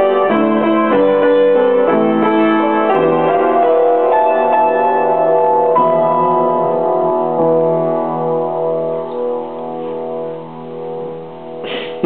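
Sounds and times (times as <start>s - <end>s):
upright piano chords: 0.0s - 12.0s.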